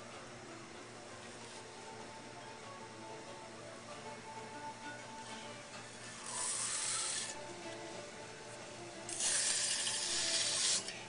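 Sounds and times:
wooden tool scraping clay: 6.1 - 7.4.

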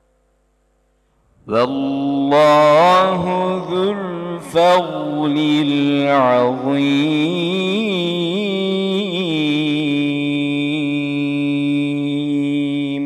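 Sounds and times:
man reciting melodically: 1.4 - 13.0.

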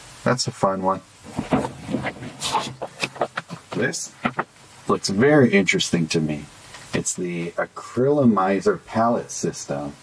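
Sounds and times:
packaging rustling and knocking: 1.3 - 4.6.

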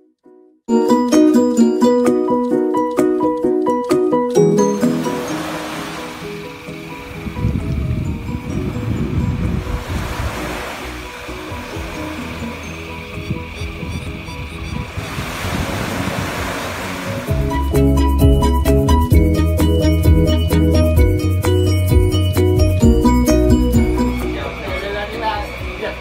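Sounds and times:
soft background music: 0.7 - 26.0
small waves washing on beach: 4.7 - 14.2, 14.8 - 17.4.

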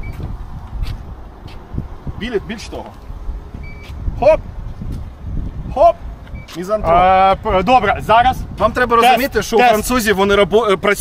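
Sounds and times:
high electronic car beep: 0.0 - 0.2, 3.6 - 4.0.

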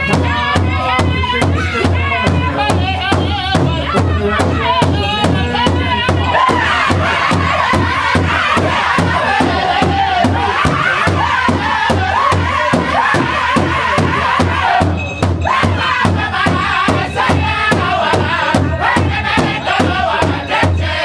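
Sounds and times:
large drum beat: 0.0 - 21.0
men singing in high voices: 0.0 - 21.0.

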